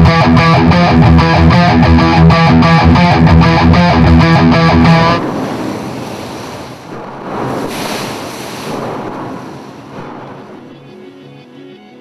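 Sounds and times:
sea noise: 2.0 - 11.6
rushing wind: 2.3 - 10.8.

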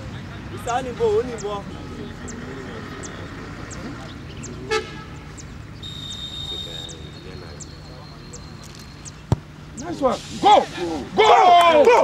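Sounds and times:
distant people talking and calling: 0.0 - 12.0
short horn toot: 5.8 - 7.0
referee's whistle: 5.8 - 7.2.

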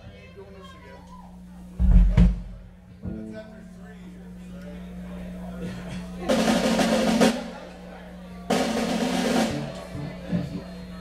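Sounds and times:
band instrument bursts: 5.1 - 11.0.

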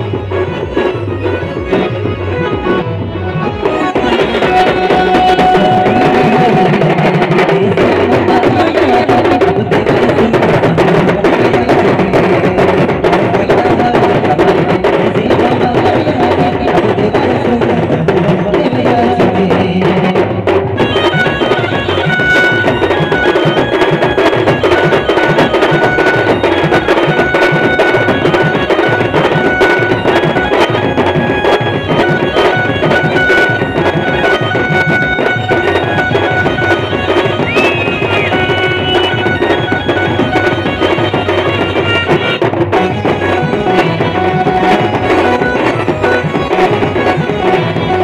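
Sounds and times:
wind instrument melody: 0.0 - 7.3, 20.8 - 48.0
fast dense drumming: 0.0 - 48.0.

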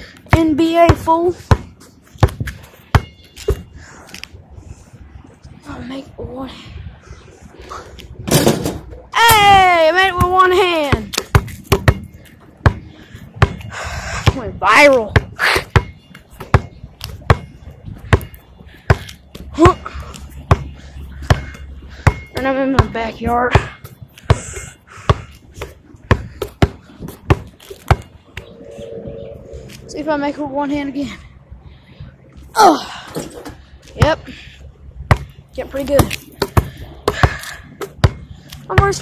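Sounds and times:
basketball bouncing: 10.6 - 12.8, 13.4 - 17.5, 20.4 - 24.5, 25.1 - 28.1, 35.9 - 39.0.

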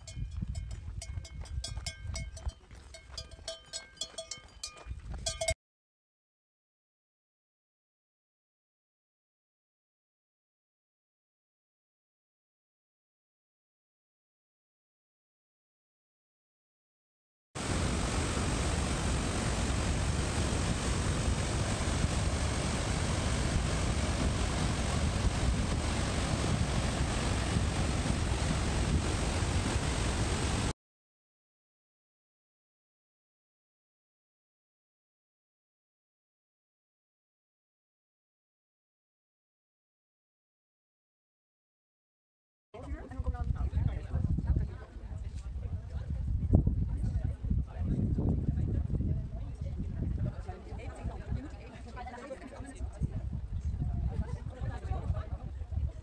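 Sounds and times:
wind rumbling on microphone: 0.0 - 2.5, 4.9 - 5.4, 17.6 - 30.7, 42.8 - 56.0
cowbells clanking: 0.0 - 5.6
waterfall roaring over rocks: 17.6 - 30.7.

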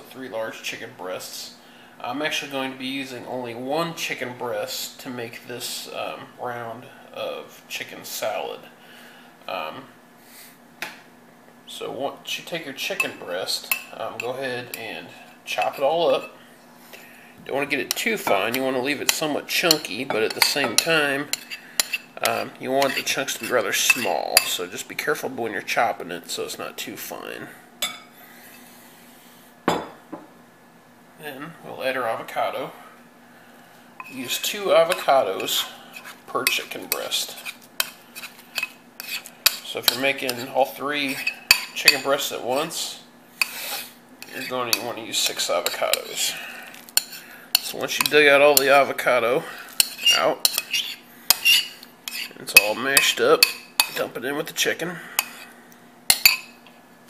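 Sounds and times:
kitchenware clinking: 29.7 - 30.3, 49.8 - 54.0, 56.1 - 56.6.

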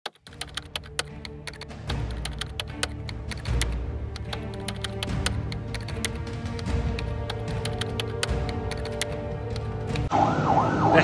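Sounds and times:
keyboard typing clicks: 0.0 - 10.1
background music: 0.1 - 10.9.

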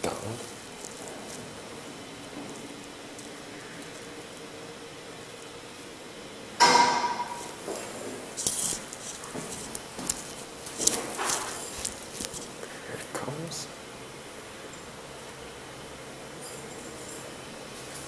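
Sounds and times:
elevator humming: 0.0 - 18.0
loud metal clank with ringing: 6.6 - 7.6.

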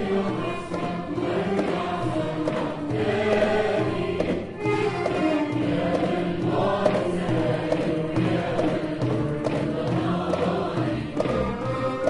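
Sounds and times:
choir singing: 0.0 - 12.0
violins and strings: 0.0 - 12.0.

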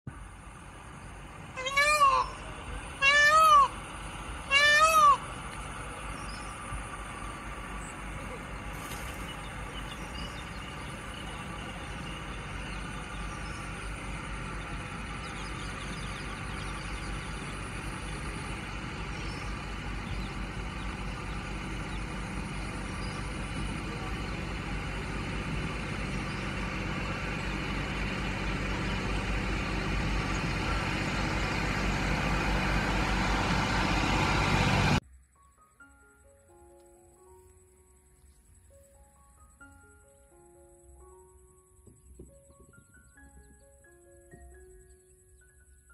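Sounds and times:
outdoor background hiss: 0.1 - 31.2, 31.8 - 45.9
peacock calling: 1.4 - 25.2.

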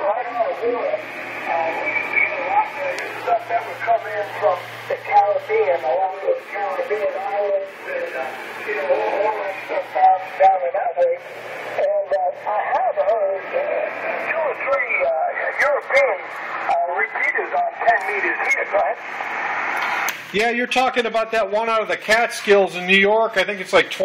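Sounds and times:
man's voice over radio speaker: 0.0 - 19.0, 20.3 - 24.0.

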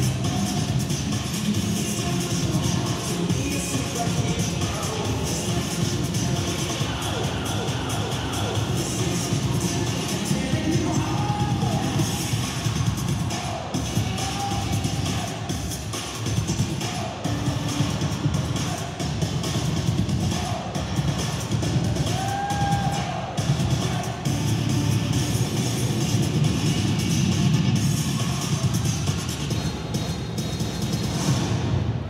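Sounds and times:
dance music with drum beat: 0.0 - 31.6.

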